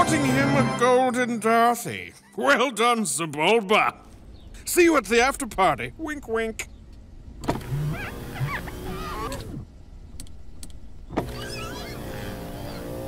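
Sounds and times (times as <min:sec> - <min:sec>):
car power window motor whining: 0:07.4 - 0:13.0.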